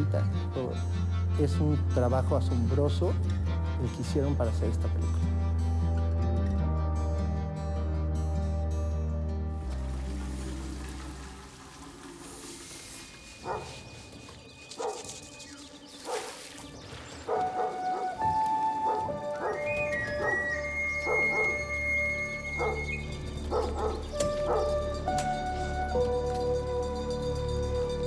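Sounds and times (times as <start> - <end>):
soft sustained music: 0.0 - 28.0
dog barking: 13.4 - 13.8, 14.8 - 15.2, 16.0 - 16.4, 17.3 - 18.2, 18.9 - 19.6, 21.0 - 21.6, 22.6 - 22.9, 23.5 - 24.7.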